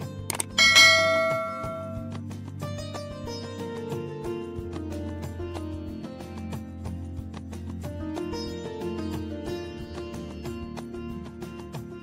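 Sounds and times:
background music: 0:00.0 - 0:12.0
bell ding: 0:00.4 - 0:02.1.

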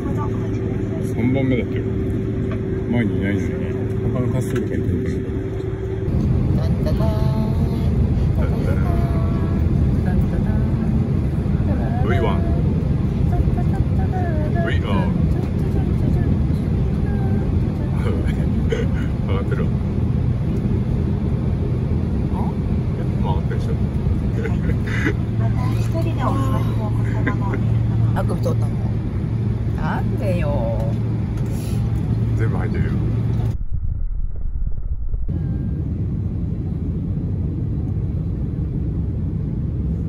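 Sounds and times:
jet airliner cabin rumble: 0:00.0 - 0:40.0.

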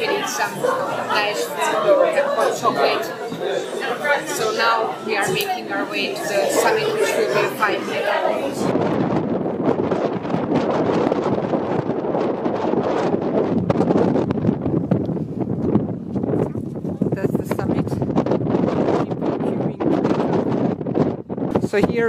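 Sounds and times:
gusty wind buffeting microphone: 0:00.0 - 0:22.0.

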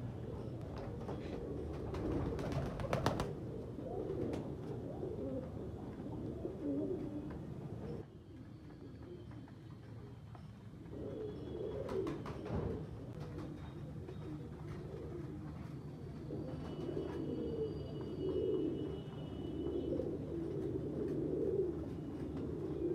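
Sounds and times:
pigeons cooing: 0:00.0 - 0:08.1, 0:10.8 - 0:22.9.

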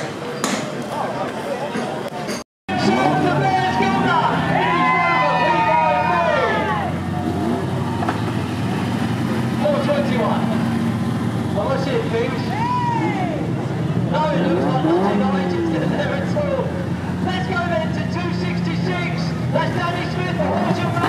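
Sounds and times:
car engines idling: 0:00.0 - 0:21.0
voices: 0:00.0 - 0:21.0.

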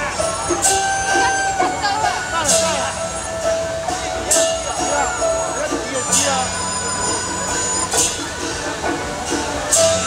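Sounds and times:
high ringing gongs: 0:00.0 - 0:10.0.

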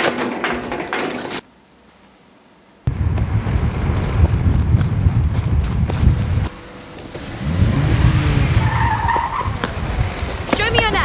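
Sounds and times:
low rumble with thuds: 0:02.9 - 0:06.5
car engine revving: 0:02.9 - 0:11.0
tyres squealing: 0:06.6 - 0:11.0.

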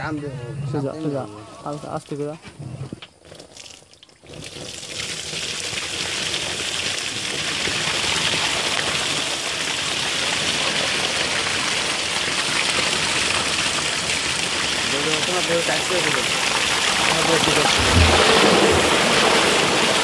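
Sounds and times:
water gushing onto plastic sheet: 0:03.2 - 0:20.0.

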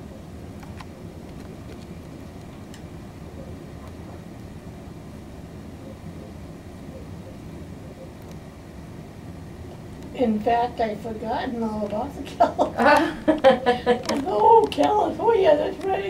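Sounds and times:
low background rumble: 0:00.0 - 0:16.0.

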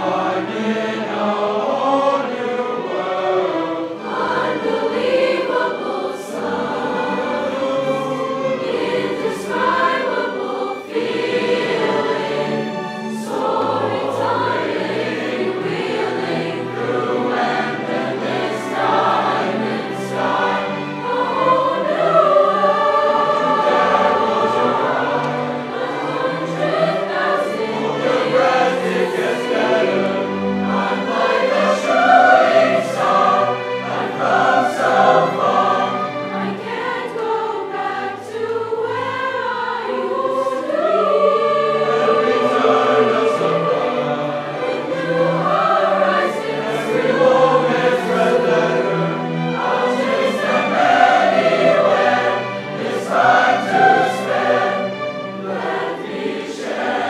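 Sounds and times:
choir of young voices singing: 0:00.0 - 0:57.0
school orchestra playing: 0:00.0 - 0:57.0.

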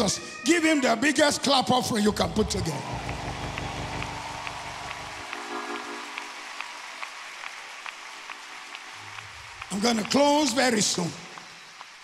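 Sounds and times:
crowd clapping: 0:02.2 - 0:12.0.

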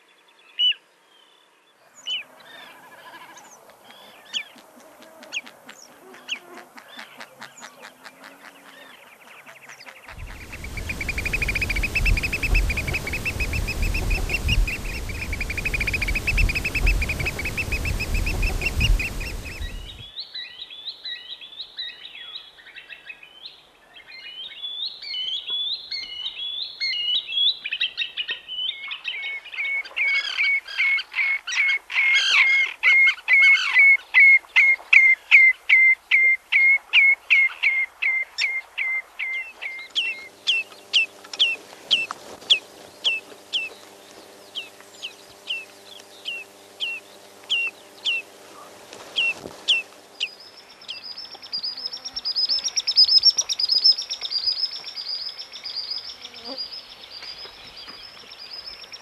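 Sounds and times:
wading bird calling: 0:05.2 - 0:20.0
background rumble: 0:10.1 - 0:20.0
shrill bird piping: 0:10.1 - 0:20.1
sharp whistled bird notes: 0:10.2 - 0:20.0.

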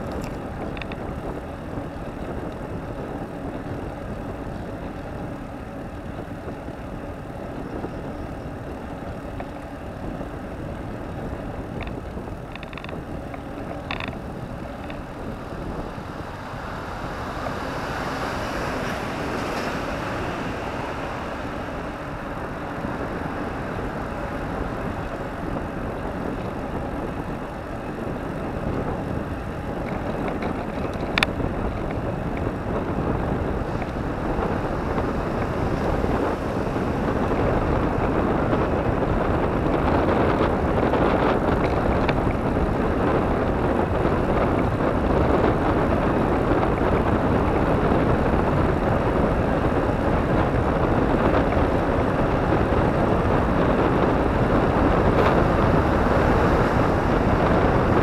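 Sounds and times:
bicycle road noise: 0:00.0 - 0:58.0
rushing wind: 0:00.0 - 0:58.0.

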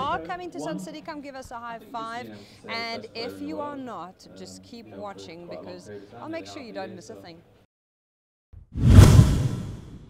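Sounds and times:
whoosh with deep boom: 0:08.7 - 0:10.0.

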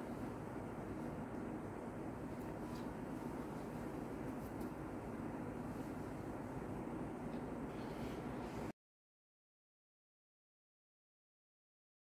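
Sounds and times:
low rumbling background noise: 0:00.0 - 0:08.8.

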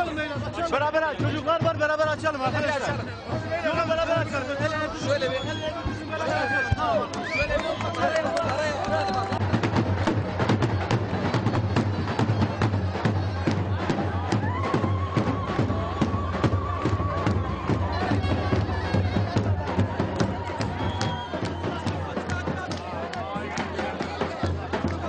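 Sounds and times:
crowd shouting: 0:02.3 - 0:25.0.

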